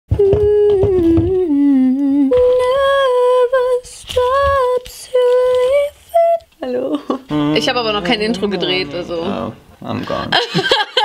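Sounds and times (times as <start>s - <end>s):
woman humming a slow tune: 0.1s - 3.7s, 6.2s - 9.5s.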